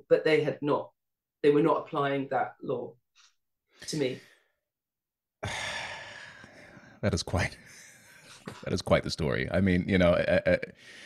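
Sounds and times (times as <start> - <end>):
long breathy sigh: 5.4 - 6.8.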